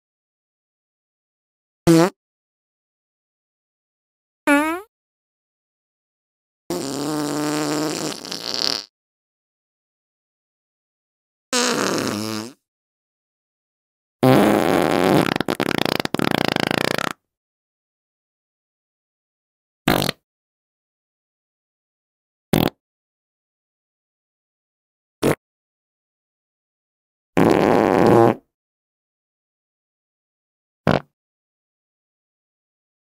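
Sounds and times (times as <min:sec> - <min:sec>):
farts: 0:01.9 - 0:02.2, 0:04.5 - 0:04.9, 0:06.7 - 0:08.9, 0:11.6 - 0:12.6, 0:14.2 - 0:17.2, 0:19.9 - 0:20.2, 0:22.5 - 0:22.8, 0:27.4 - 0:28.5, 0:30.9 - 0:31.2.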